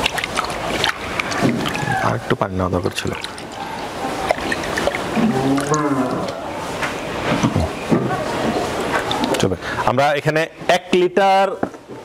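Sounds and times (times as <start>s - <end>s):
water sloshing in a bucket: 0.0s - 9.9s.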